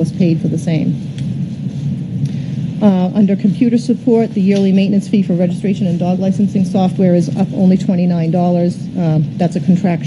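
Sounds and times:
woman saying uh: 0:00.0 - 0:01.0, 0:02.8 - 0:10.0
low rumbling background noise: 0:00.0 - 0:10.0.

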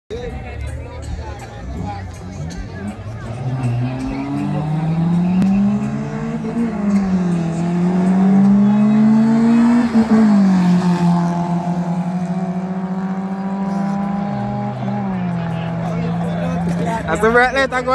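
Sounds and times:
car engines at full throttle: 0:01.0 - 0:17.9.

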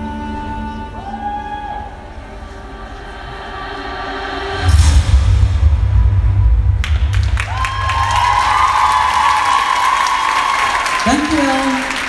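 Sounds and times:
deep boom: 0:04.5 - 0:09.5
audience applause and cheering: 0:06.6 - 0:12.0
long high cheer: 0:07.1 - 0:12.0.

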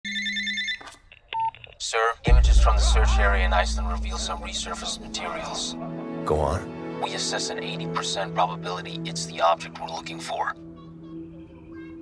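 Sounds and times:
man speaking: 0:02.1 - 0:10.5.

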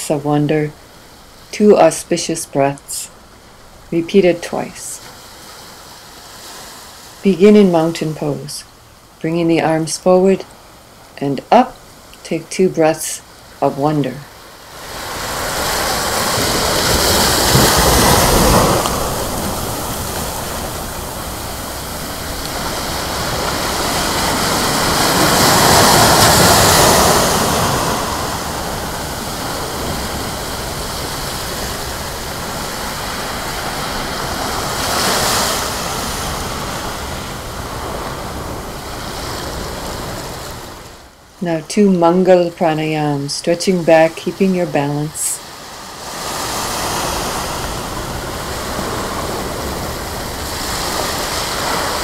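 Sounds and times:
ocean surf breaking on beach: 0:00.2 - 0:09.2, 0:14.3 - 0:41.4, 0:42.3 - 0:52.0.

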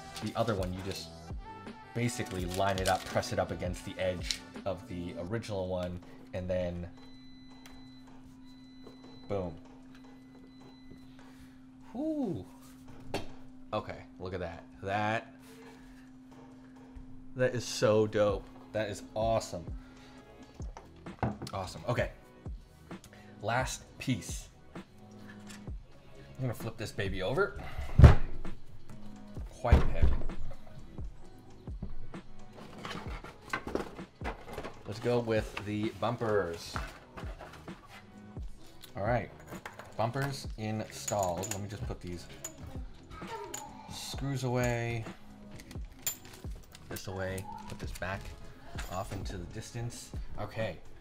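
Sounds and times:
steady low hum: 0:05.6 - 0:21.2.

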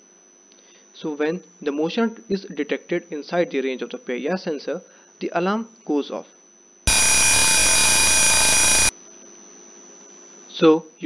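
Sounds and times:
alarm buzzer steady tone: 0:06.9 - 0:08.9.

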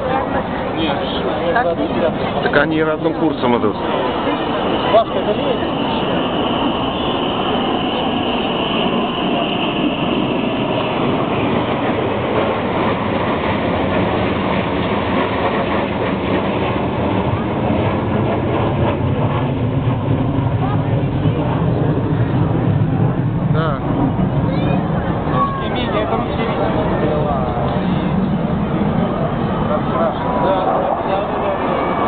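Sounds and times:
deep jet rumble: 0:00.0 - 0:32.0
high jet engine whine: 0:00.0 - 0:32.0
jet aircraft roar: 0:00.0 - 0:32.0.

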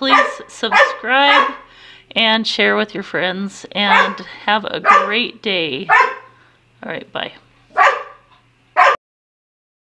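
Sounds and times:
dog barking: 0:00.0 - 0:01.6, 0:03.9 - 0:05.2, 0:05.9 - 0:06.3, 0:07.7 - 0:09.0.

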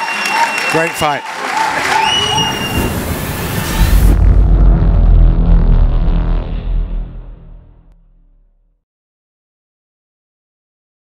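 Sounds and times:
hissing rush: 0:01.7 - 0:07.9
deep boom with low rumble: 0:02.2 - 0:08.6.

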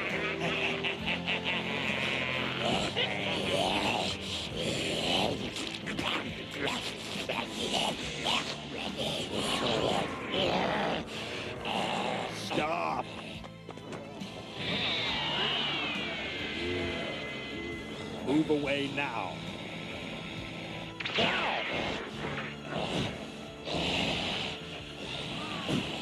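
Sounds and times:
monster cries: 0:00.0 - 0:13.4, 0:14.4 - 0:26.0
background fight music: 0:00.0 - 0:26.0.

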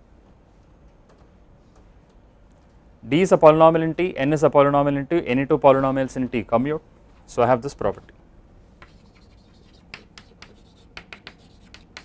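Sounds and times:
chalk tapping and scraping on blackboard: 0:08.8 - 0:12.0.

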